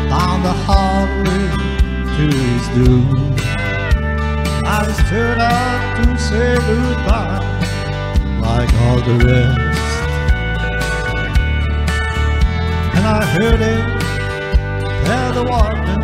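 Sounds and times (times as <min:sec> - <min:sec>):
bass: 0:00.0 - 0:16.0
electric guitar melodic lines: 0:00.0 - 0:16.0.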